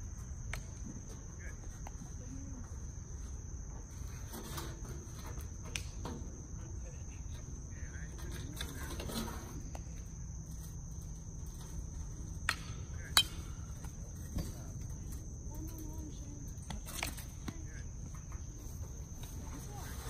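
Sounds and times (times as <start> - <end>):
insects chirring: 0.0 - 20.0.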